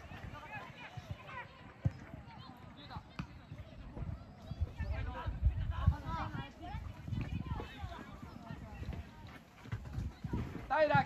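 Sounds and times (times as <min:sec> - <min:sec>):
ball being kicked: 0:00.1 - 0:02.2, 0:03.0 - 0:04.1.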